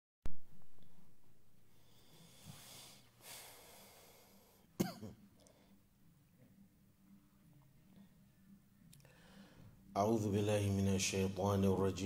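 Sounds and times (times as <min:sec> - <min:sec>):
man breathing: 0:01.7 - 0:04.8, 0:09.0 - 0:09.9
short cough: 0:04.8 - 0:05.2.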